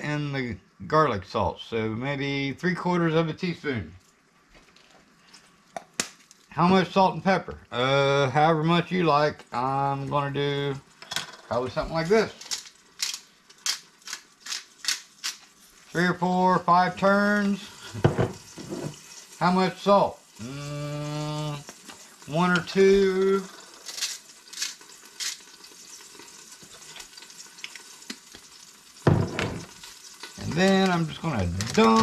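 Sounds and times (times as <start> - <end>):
oil sizzling in a pot: 8.9 - 32.0
pepper grinder grinding: 11.8 - 15.6, 20.4 - 28.5, 29.2 - 32.0.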